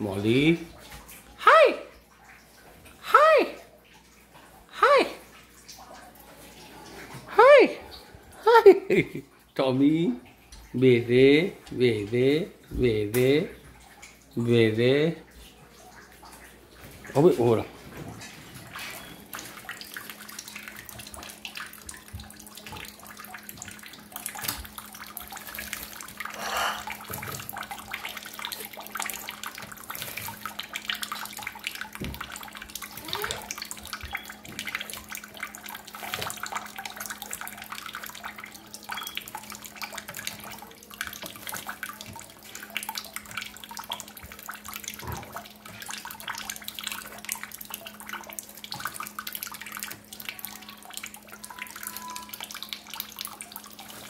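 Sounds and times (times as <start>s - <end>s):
tap water running into steel sink: 9.0s - 54.0s.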